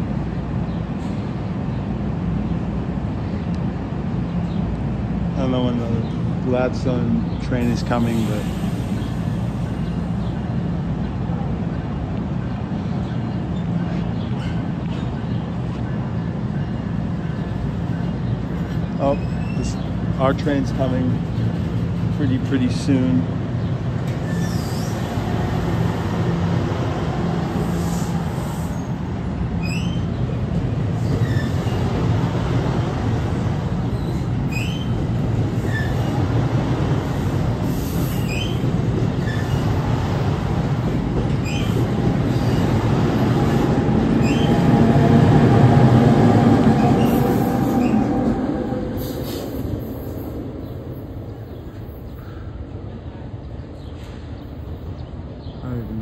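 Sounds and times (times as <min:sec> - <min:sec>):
train wheels rumbling on rail: 0:00.0 - 0:56.0
wheel squeals: 0:19.0 - 0:19.9, 0:24.1 - 0:25.2, 0:29.6 - 0:30.2, 0:31.0 - 0:32.0, 0:33.9 - 0:36.2, 0:37.6 - 0:39.8, 0:41.3 - 0:42.8, 0:44.2 - 0:44.8.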